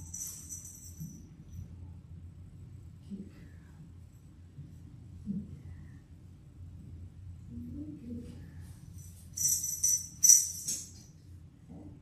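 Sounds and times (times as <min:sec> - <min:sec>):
small bell jingling: 0:00.0 - 0:01.3, 0:09.0 - 0:11.2.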